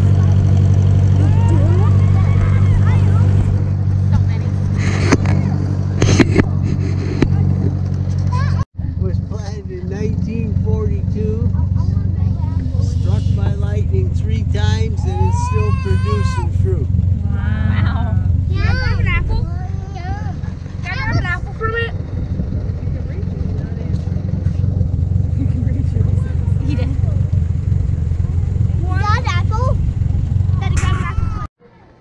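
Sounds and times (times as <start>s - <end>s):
tractor engine rumble: 0.0s - 31.5s
voices: 0.0s - 32.0s.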